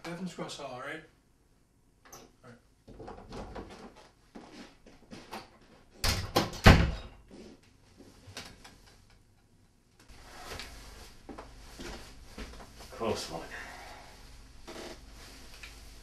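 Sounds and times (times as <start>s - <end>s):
door slamming: 6.0s - 7.1s
rustling and handling noises: 10.0s - 16.0s.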